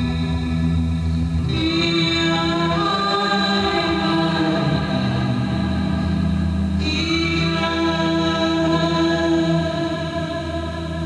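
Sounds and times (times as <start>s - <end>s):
woman singing long notes: 1.4s - 6.2s, 6.8s - 11.0s.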